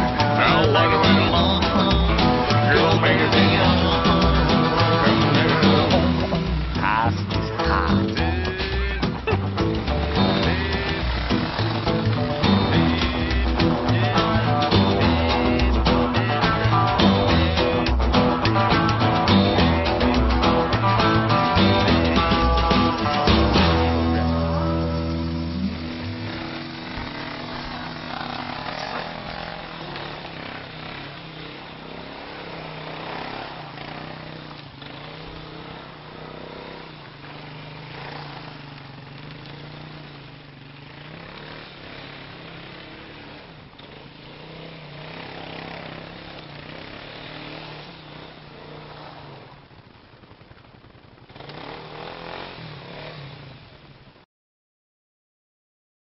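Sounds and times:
quad engine revving: 0.0 - 53.9.

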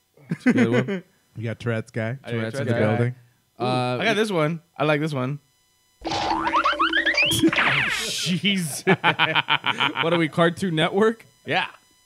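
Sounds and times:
sliding tones: 6.0 - 8.2
climbing whistle-like notes: 6.0 - 8.3.

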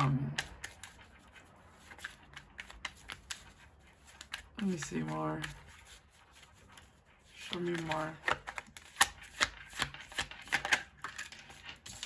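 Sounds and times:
cards snapping while shuffled: 7.5 - 12.0.

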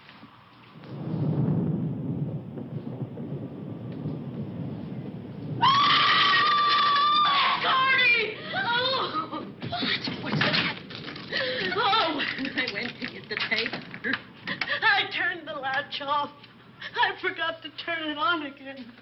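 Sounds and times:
rain: 0.0 - 15.3
thunder rumbling: 0.0 - 17.4
woman screaming: 5.6 - 9.4.

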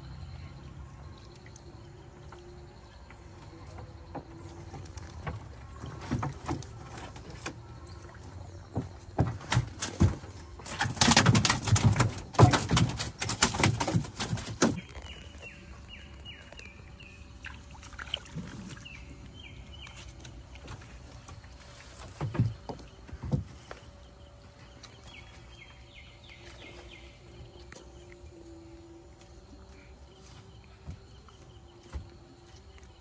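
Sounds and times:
fish thrashing in wooden canoe: 2.8 - 28.0.

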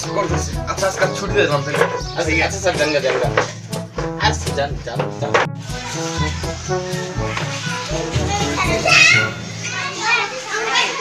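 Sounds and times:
background music with bass: 0.0 - 10.3
children calling and shouting: 0.0 - 11.0.

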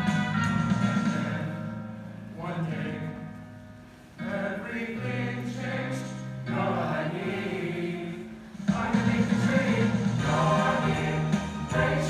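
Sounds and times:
choir singing held notes: 4.2 - 12.0.

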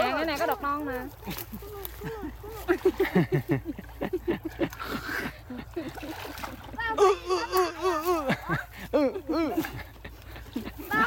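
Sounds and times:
muddy water splashing: 0.0 - 11.0.

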